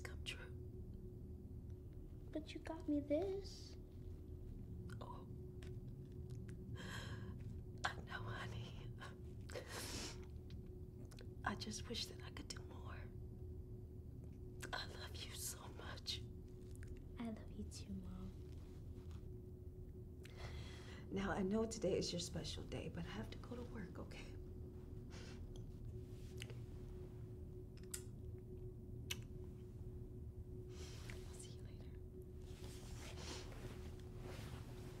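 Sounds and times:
low steady hum: 0.0s - 35.0s.

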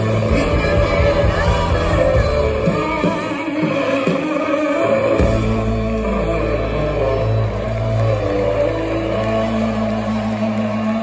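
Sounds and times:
rock band holding a chord: 0.0s - 11.0s.

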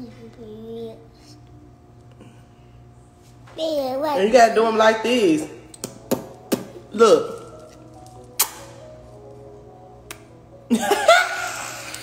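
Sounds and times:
faint background music: 0.0s - 12.0s
sharp lip smack: 8.4s - 8.8s.

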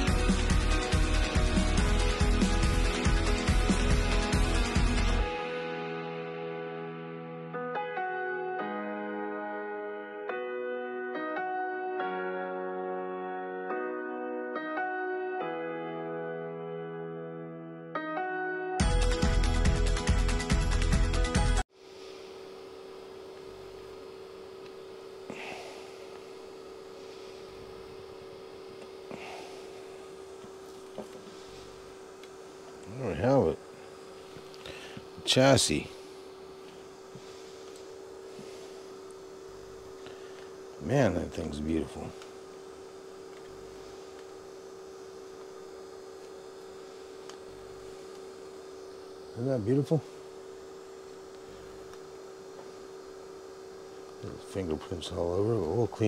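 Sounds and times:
background music: 0.0s - 21.6s
low electrical hum: 21.7s - 56.0s.

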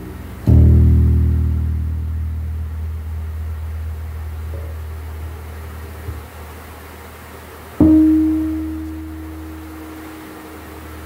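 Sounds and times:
soft higher bass note: 0.0s - 6.0s, 7.8s - 11.0s
electric bass chord tapped: 0.0s - 6.3s, 7.8s - 11.0s.

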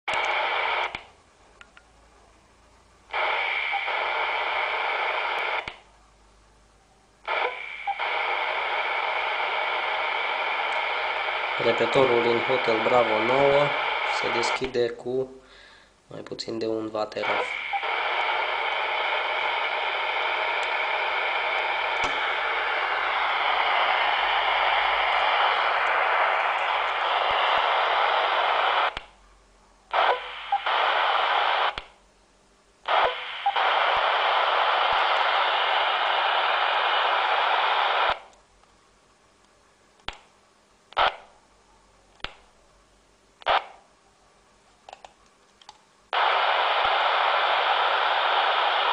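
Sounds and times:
radio speaker hiss: 0.1s - 1.1s, 3.1s - 5.9s, 7.2s - 29.2s, 29.9s - 32.0s, 32.8s - 38.4s, 40.9s - 41.4s, 43.4s - 43.9s, 46.1s - 48.9s
sharp clicks: 31.7s - 32.0s, 40.0s - 40.3s, 42.2s - 42.4s.

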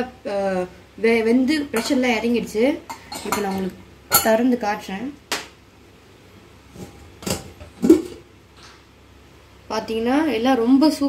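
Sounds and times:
metal utensil knocking on pot: 2.9s - 4.4s.

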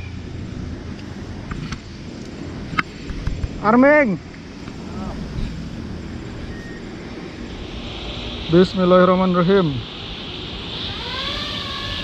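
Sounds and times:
propeller wash rushing: 0.3s - 12.0s
drone motors whining: 4.6s - 12.0s.

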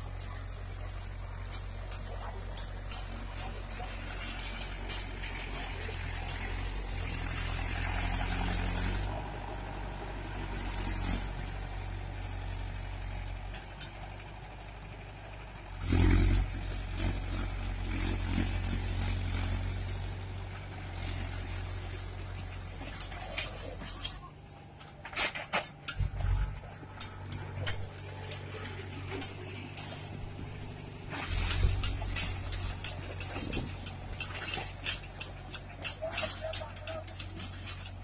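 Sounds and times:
rotary tiller through soil: 0.0s - 14.1s, 15.8s - 38.0s
tractor diesel engine under load: 0.0s - 38.0s.

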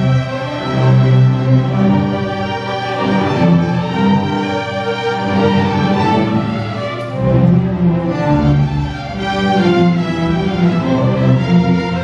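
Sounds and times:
string orchestra playing: 0.0s - 12.0s.

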